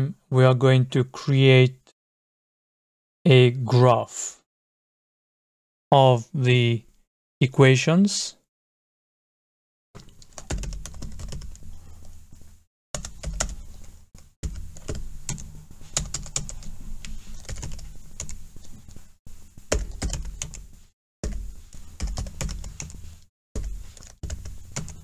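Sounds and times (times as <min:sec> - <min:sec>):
computer keyboard typing: 0:10.0 - 0:11.6, 0:13.0 - 0:18.4, 0:19.7 - 0:20.6, 0:21.2 - 0:23.0, 0:23.6 - 0:25.0.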